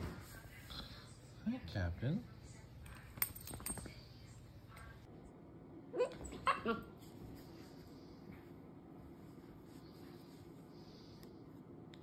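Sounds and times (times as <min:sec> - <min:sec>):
puppy barking: 0:06.0 - 0:06.9.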